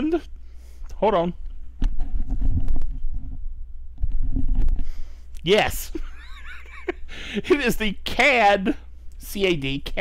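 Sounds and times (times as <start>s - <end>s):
headset microphone handling noise: 1.4s - 5.0s.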